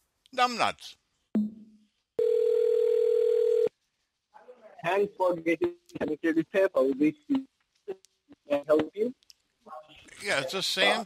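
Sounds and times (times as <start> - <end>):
telephone call-progress tone: 2.2 - 3.7.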